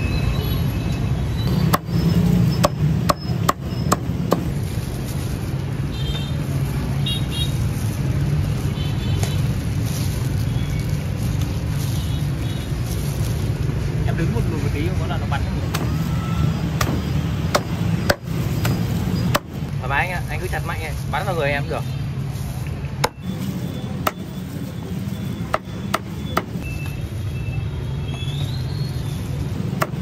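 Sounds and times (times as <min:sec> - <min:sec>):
cleaver chopping on wooden block: 0:01.6 - 0:01.9, 0:02.6 - 0:04.5, 0:16.8 - 0:19.6, 0:25.5 - 0:26.6, 0:29.8 - 0:30.0.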